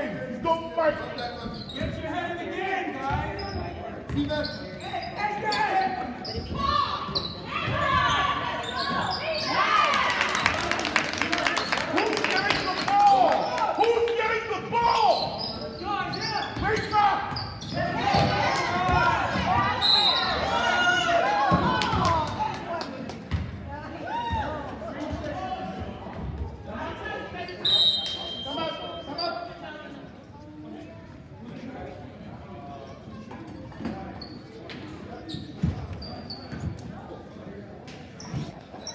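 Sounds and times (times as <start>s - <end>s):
voices in hall: 0.0s - 38.9s
sneakers squeaking: 0.9s - 2.2s, 3.0s - 10.5s, 14.6s - 20.8s, 33.0s - 37.2s, 37.9s - 38.9s.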